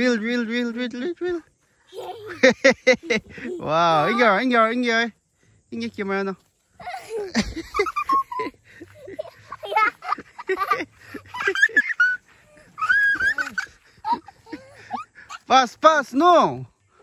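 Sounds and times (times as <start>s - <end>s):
adult and child talking excitedly: 0.0s - 7.3s, 12.5s - 16.7s.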